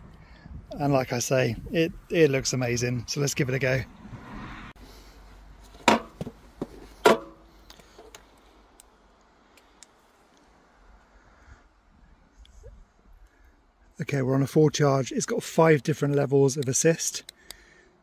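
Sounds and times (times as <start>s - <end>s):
sharp knocks: 5.8s - 7.4s.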